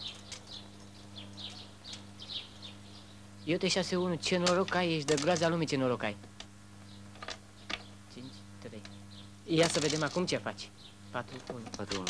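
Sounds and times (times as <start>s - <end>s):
dice and checkers clicking on board: 4.4s - 5.6s, 9.6s - 10.3s.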